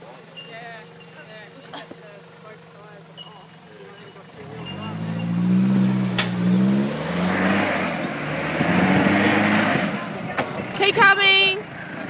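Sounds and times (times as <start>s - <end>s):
truck engine revving under load: 2.4s - 12.0s.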